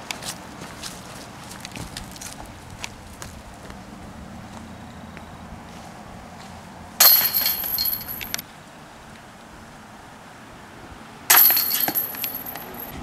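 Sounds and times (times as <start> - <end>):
disc golf basket chains rattling: 7.0 - 8.4, 11.3 - 13.0.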